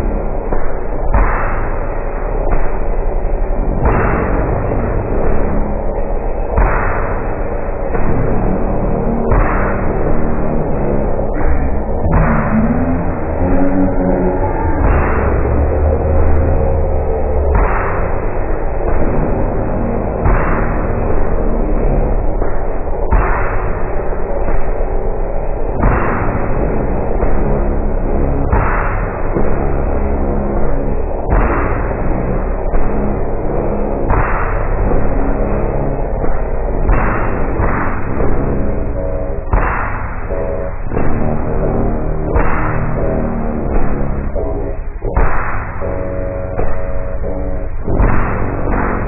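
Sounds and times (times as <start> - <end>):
drone of low tones: 0.0 - 49.0
slowed grainy wash of sound: 0.0 - 49.0.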